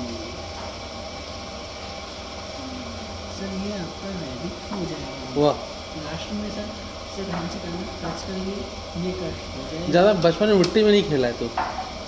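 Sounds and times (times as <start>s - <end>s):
potter's wheel motor whirring: 0.0s - 12.0s.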